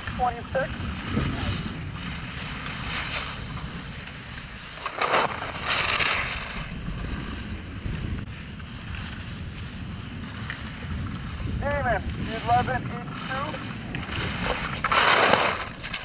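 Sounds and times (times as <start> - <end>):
ski edges scraping snow: 0.0 - 8.1, 8.7 - 16.0
wind buffeting microphone: 0.0 - 16.0.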